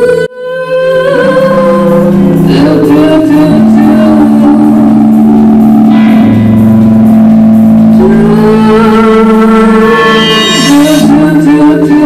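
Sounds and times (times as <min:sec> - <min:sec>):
synthesizer drone: 0:00.0 - 0:12.0.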